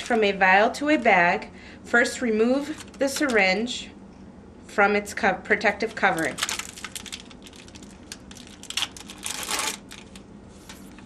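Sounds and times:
plastic wrapper crinkling: 5.9s - 11.0s.

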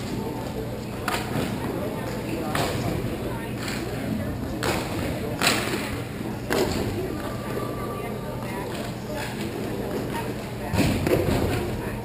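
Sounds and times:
players' voices in a hall: 0.0s - 12.0s.

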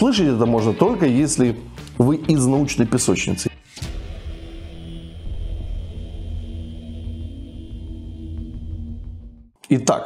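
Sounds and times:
held low tones: 3.7s - 9.6s
deep steady rumble: 3.9s - 9.5s.

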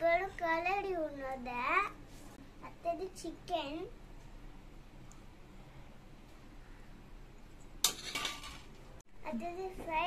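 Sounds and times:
metal plate clinking on pot: 7.8s - 8.7s.

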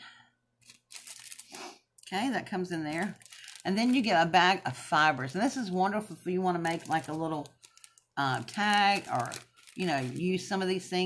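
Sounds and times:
paper bag crinkling: 0.6s - 1.6s, 2.5s - 4.6s, 6.4s - 10.9s
papers being handled: 6.5s - 10.8s.

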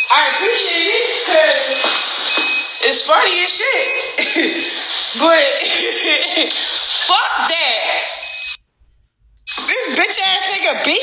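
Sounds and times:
woman speaking: 0.0s - 2.0s, 2.8s - 6.3s, 6.9s - 8.2s, 9.6s - 11.0s
noise: 0.0s - 11.0s.

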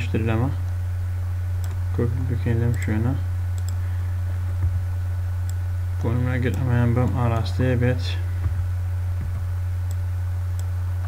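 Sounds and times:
low electrical hum: 0.0s - 11.0s
computer mouse clicks: 1.6s - 1.8s, 3.6s - 3.8s.

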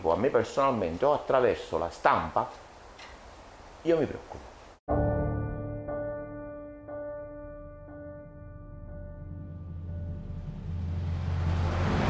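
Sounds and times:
low rumble with rising hiss: 9.4s - 12.0s
whoosh: 9.6s - 12.0s.

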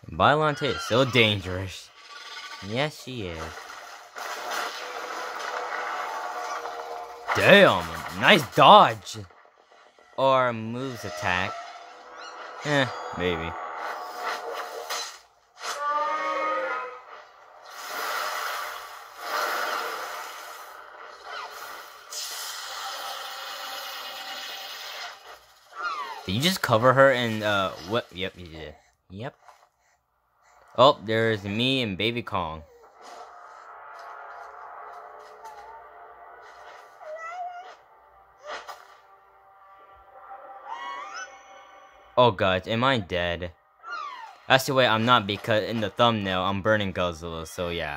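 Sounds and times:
rising pitched cry: 15.7s - 17.2s, 40.4s - 42.1s, 43.8s - 44.4s.

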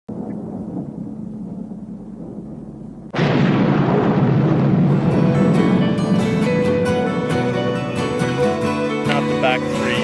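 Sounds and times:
thunder-like boom: 0.1s - 8.5s
low steady rumble: 0.1s - 8.6s.

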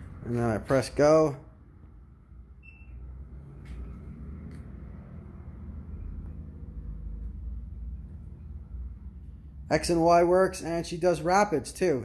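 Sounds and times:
drive motor humming: 2.7s - 9.7s.

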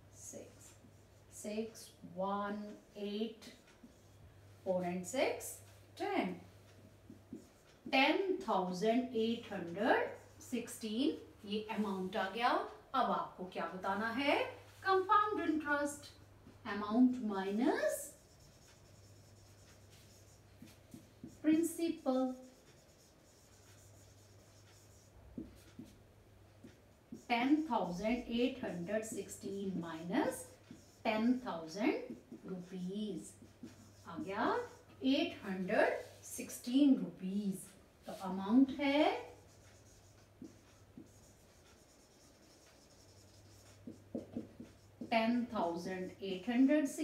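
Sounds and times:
marker pen writing on whiteboard: 0.5s - 12.8s, 13.7s - 47.0s
marker pen tapping: 7.1s - 7.6s, 22.7s - 26.0s, 39.6s - 45.1s
soft taps: 43.9s - 45.1s.

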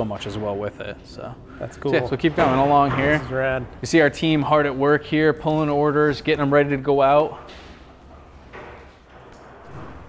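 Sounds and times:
warehouse room background noise: 0.0s - 10.0s.

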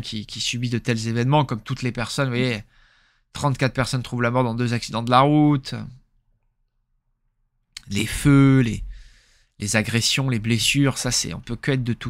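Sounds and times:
man speaking: 0.0s - 2.7s, 3.4s - 6.0s, 7.8s - 9.0s, 9.6s - 12.0s.

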